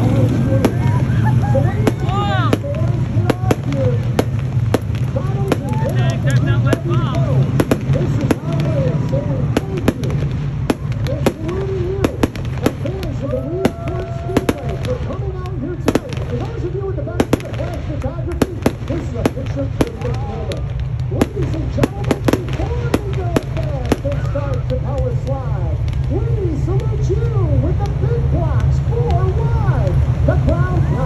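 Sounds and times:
fireworks bangs and crackles: 0.0s - 31.0s.

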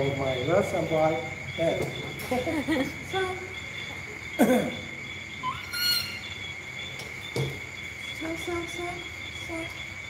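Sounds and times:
crickets chirping: 0.0s - 10.0s
high squeak: 5.4s - 6.4s.

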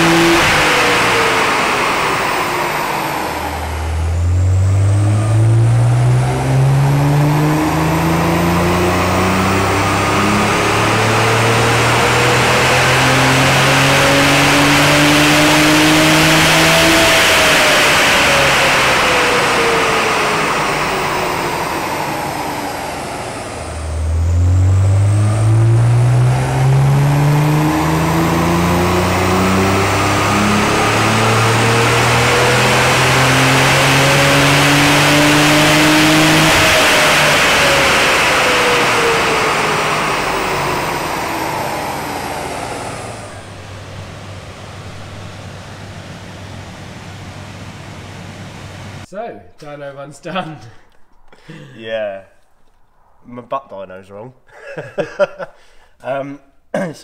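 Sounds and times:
car engine at full throttle: 0.0s - 49.1s
dyno rollers whining down: 0.0s - 49.1s.

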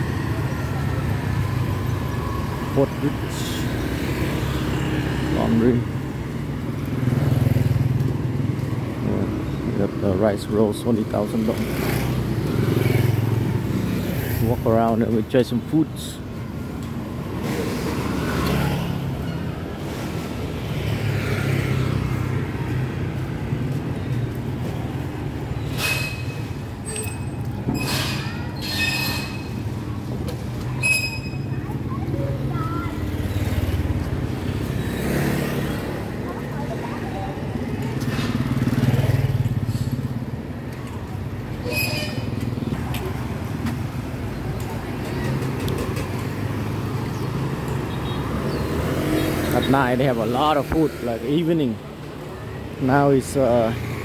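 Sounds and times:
motorbike engines passing: 0.0s - 54.0s.

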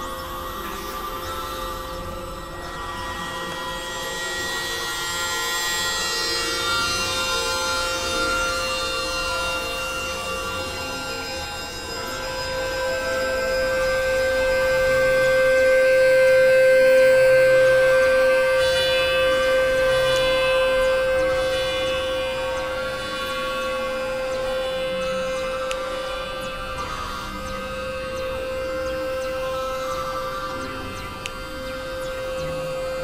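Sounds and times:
electronic drone music: 0.0s - 33.0s.

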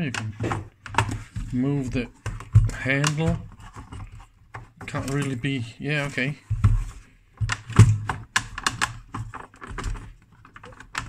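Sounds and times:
plastic clicks and knocks: 0.0s - 5.6s, 6.5s - 11.0s.

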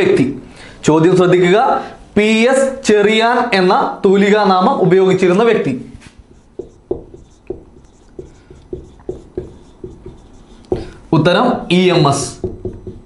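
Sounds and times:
marker writing on whiteboard: 6.0s - 11.1s, 12.0s - 13.0s.

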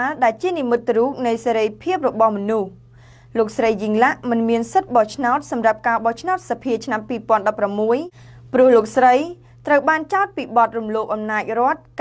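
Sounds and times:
woman reading aloud: 0.0s - 12.0s.

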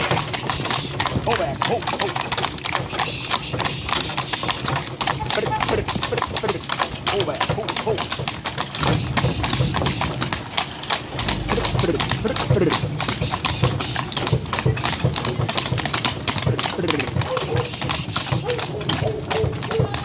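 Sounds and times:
hooves clip-clopping on pavement: 0.0s - 20.0s
background voices: 9.1s - 15.0s.

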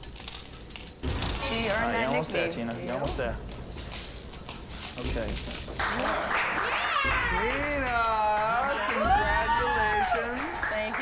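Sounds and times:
people clapping: 5.6s - 11.0s
people cheering with whoops: 5.8s - 10.8s.

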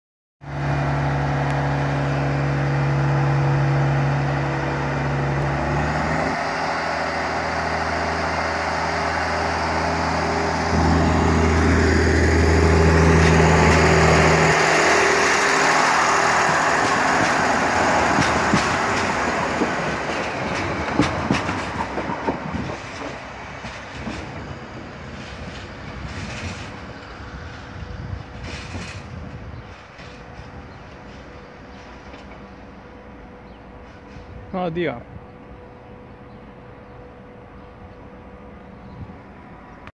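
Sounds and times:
diesel train engine: 0.4s - 39.9s
wheels clicking over rail joints: 12.4s - 32.7s.

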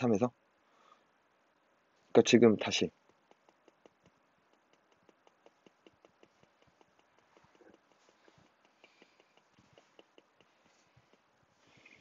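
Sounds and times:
stylus tapping glass screen: 2.9s - 11.3s.

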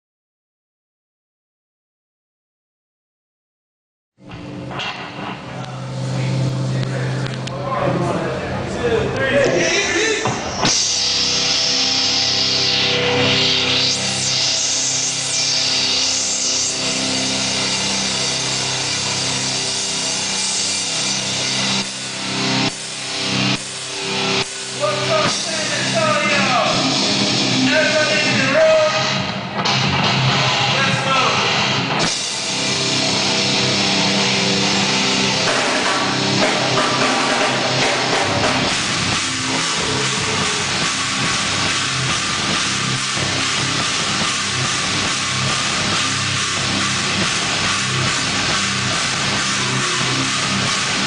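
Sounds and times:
distorted electric guitars: 4.2s - 51.0s
heavy rock band playing live: 9.4s - 51.0s
drums and cymbals: 9.6s - 51.0s.

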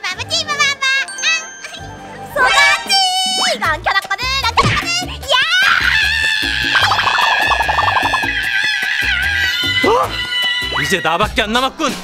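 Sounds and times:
long drawn-out vocal cry: 5.7s - 10.7s
music with steady beat: 6.5s - 8.5s.

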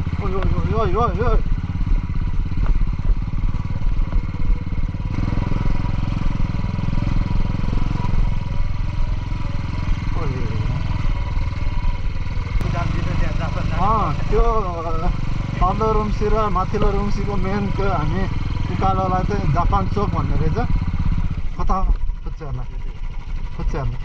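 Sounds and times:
motorcycle engine running: 0.0s - 24.0s.

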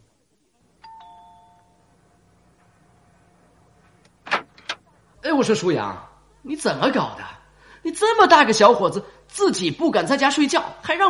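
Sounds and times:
two-note doorbell chime: 0.8s - 1.9s.

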